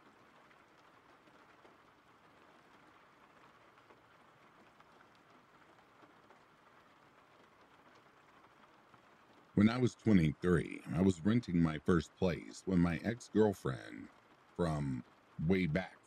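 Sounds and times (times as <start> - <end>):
faint steady rain: 0.0 - 16.0.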